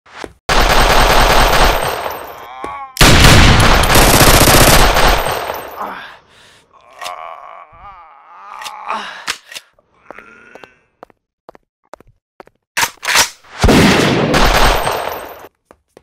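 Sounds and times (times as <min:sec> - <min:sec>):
automatic gunfire: 0:00.5 - 0:02.2, 0:03.0 - 0:05.7, 0:13.7 - 0:15.3
man groaning: 0:02.4 - 0:03.0, 0:05.7 - 0:09.3, 0:09.9 - 0:10.9.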